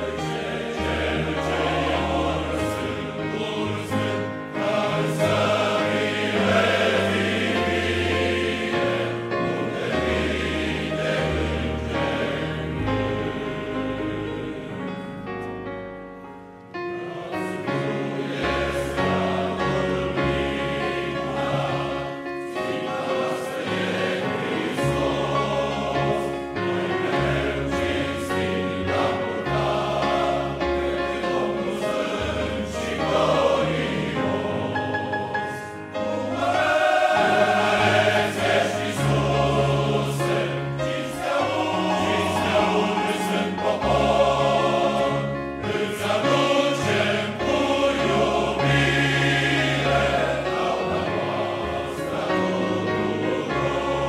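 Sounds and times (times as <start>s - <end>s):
men's choir singing held chords: 0.0s - 15.6s, 16.6s - 54.0s.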